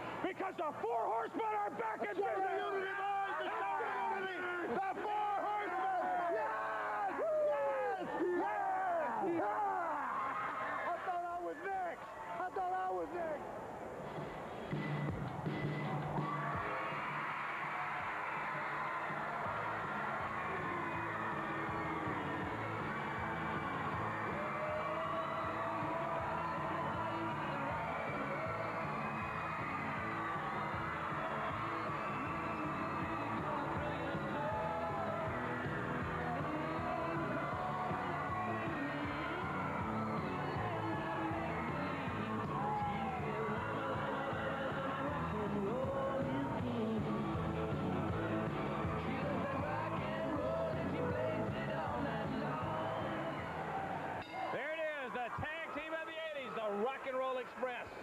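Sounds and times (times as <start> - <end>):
crowd cheering: 0.0 - 13.6, 14.7 - 58.0
men shouting and whooping: 1.3 - 11.3, 16.2 - 44.9
music playing: 14.1 - 55.0.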